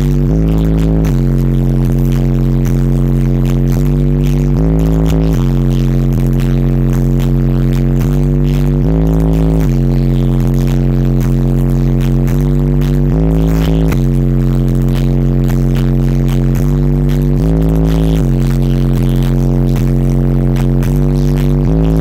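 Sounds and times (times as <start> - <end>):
loud bass music from subwoofers: 0.0 - 22.0.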